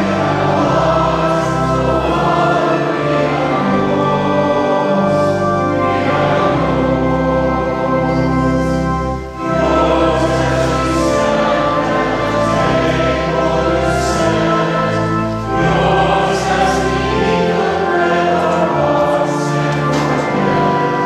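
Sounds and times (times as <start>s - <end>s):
church choir singing a hymn: 0.0s - 21.0s
organ accompaniment: 0.0s - 21.0s.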